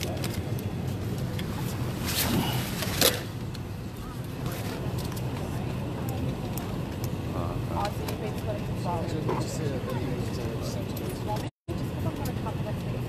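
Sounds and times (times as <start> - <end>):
airliner cabin hum: 0.0 - 13.0
passengers talking indistinctly: 0.0 - 13.0.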